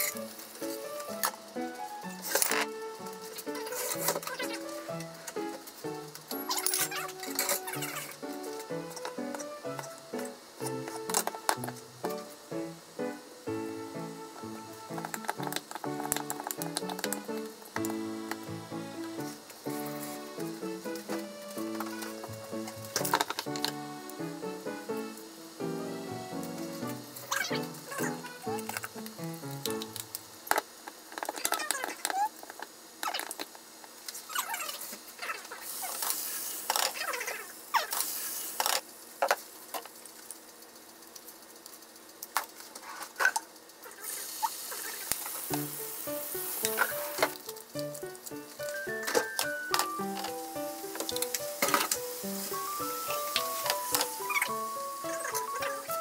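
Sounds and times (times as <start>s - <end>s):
light background music: 0.0s - 30.2s, 45.4s - 56.0s.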